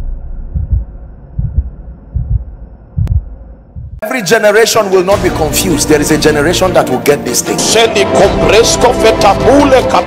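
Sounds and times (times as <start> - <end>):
low heartbeat thumps: 0.0 - 4.0.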